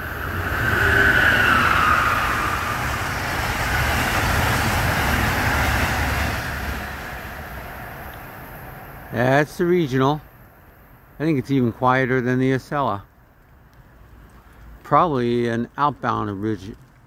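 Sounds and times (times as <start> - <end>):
high whine: 0.0 - 9.3
train wheels rushing on rail: 0.0 - 9.3.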